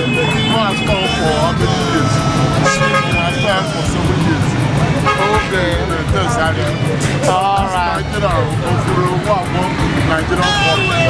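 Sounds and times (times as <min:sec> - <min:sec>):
vehicle horn tooting: 0:00.0 - 0:05.8, 0:10.4 - 0:11.0
many voices talking: 0:00.0 - 0:11.0
music with steady beat: 0:00.0 - 0:11.0.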